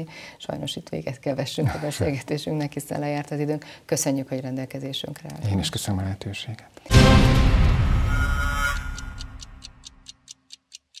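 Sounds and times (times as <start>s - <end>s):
theme music: 6.9s - 10.0s
clock-like ticking: 8.2s - 11.0s.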